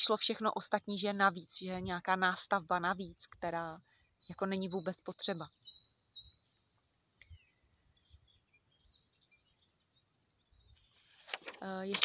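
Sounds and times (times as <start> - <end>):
bird chirps and twittering: 0.0 - 12.0.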